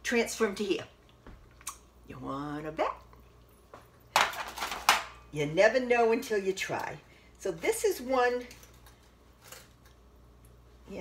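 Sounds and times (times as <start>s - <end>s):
aluminium foil crinkling: 8.2s - 10.1s.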